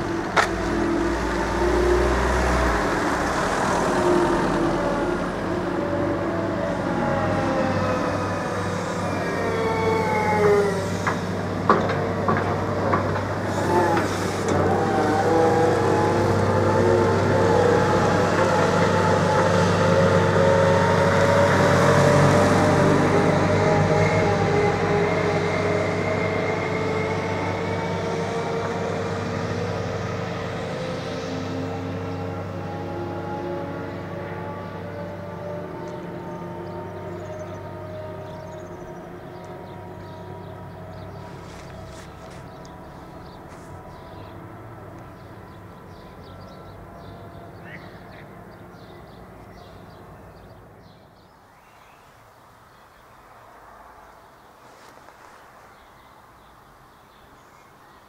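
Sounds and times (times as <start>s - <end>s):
electric train motor whine: 0.0s - 30.7s.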